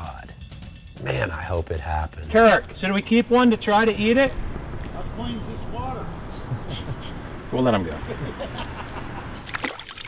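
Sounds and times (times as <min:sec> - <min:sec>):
low outdoor background noise: 0:01.0 - 0:10.0.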